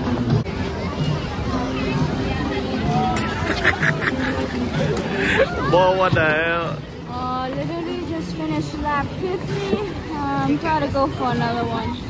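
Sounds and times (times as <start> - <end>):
crowd voices hubbub: 0.0 - 12.0.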